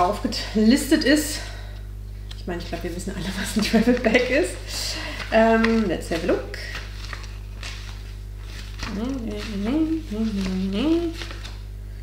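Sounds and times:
low background hum: 0:00.0 - 0:12.0
woman humming softly: 0:08.9 - 0:11.3.

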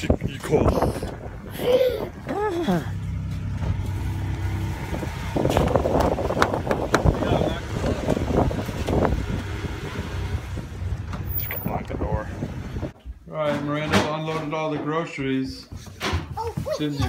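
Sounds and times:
car cabin hum: 0:05.5 - 0:09.2.

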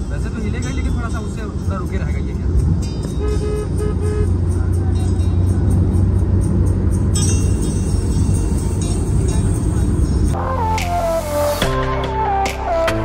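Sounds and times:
road and engine rumble in car: 0:00.0 - 0:11.6
music playing: 0:02.6 - 0:13.0.

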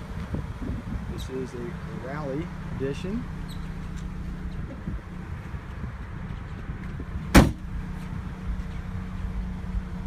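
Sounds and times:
car trunk lid slamming shut: 0:07.3 - 0:07.7.

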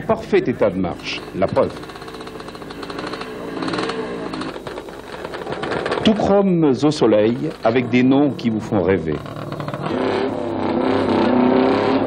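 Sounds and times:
small motorcycle engine revving: 0:00.0 - 0:12.0.

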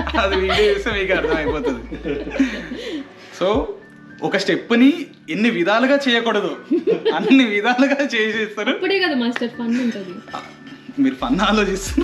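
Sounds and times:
man laughing and talking: 0:00.0 - 0:03.6, 0:06.6 - 0:08.8, 0:11.0 - 0:12.0
cutlery clinking on a plate: 0:10.2 - 0:10.9.

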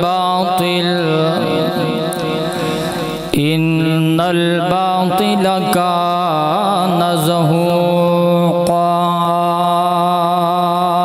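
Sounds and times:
man chanting a long note: 0:00.0 - 0:11.0.

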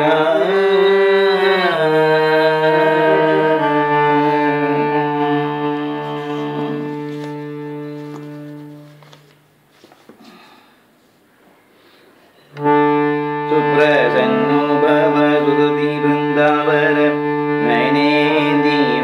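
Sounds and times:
harmonium chords: 0:00.0 - 0:09.6, 0:12.5 - 0:19.0.

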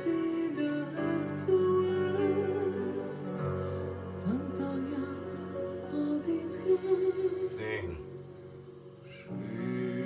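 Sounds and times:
man singing slow song: 0:00.0 - 0:08.4, 0:09.0 - 0:10.0
soft accompaniment: 0:00.0 - 0:10.0.

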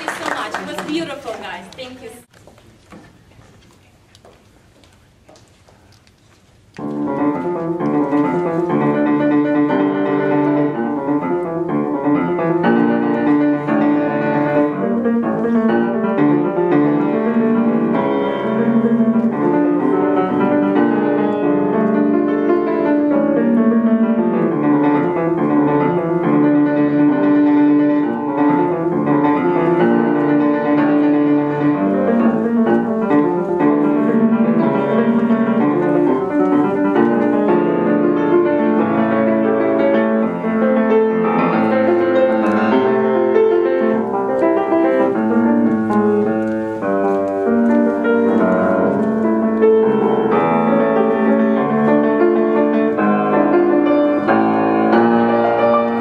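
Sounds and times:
solo grand piano: 0:03.1 - 0:56.0.

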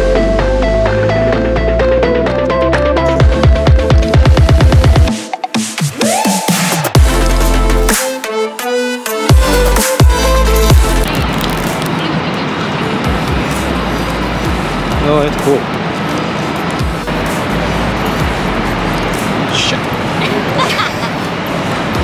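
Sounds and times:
low traffic rumble: 0:00.0 - 0:05.1, 0:09.3 - 0:22.0
electronic dance music: 0:00.0 - 0:11.9, 0:13.0 - 0:15.8, 0:16.7 - 0:20.6
city street noise: 0:00.0 - 0:22.0.

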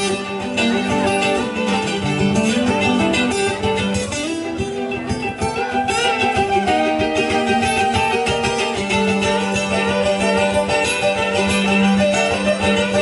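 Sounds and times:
fiddle: 0:00.0 - 0:13.0
mandolin: 0:00.0 - 0:13.0
strummed acoustic guitar: 0:00.0 - 0:13.0.

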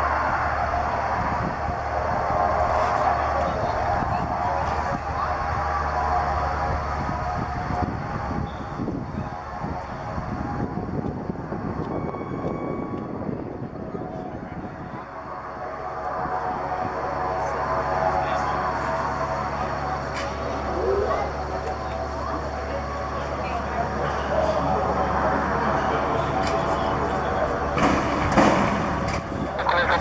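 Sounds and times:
turboprop engines droning: 0:00.0 - 0:30.0.

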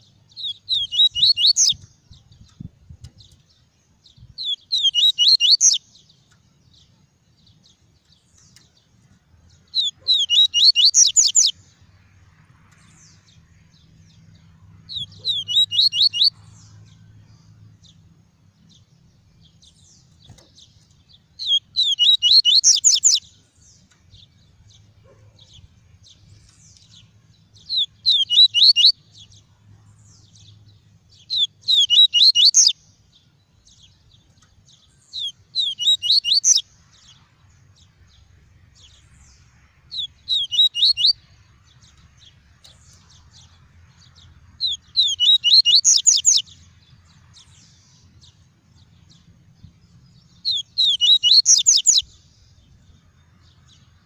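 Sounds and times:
bird singing high repeated notes: 0:00.0 - 0:02.6, 0:04.2 - 0:06.1, 0:09.6 - 0:11.8, 0:14.8 - 0:16.8, 0:18.8 - 0:24.0, 0:26.2 - 0:29.3, 0:31.1 - 0:33.0, 0:33.7 - 0:37.2, 0:38.8 - 0:41.4, 0:44.6 - 0:46.6, 0:50.2 - 0:52.4.

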